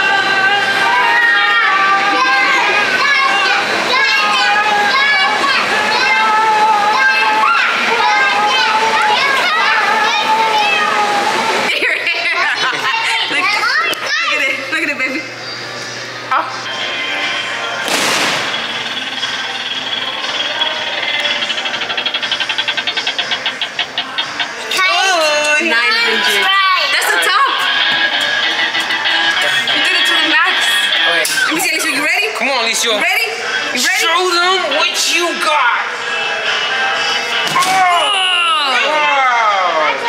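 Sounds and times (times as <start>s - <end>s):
fan air rushing: 0.0s - 40.0s.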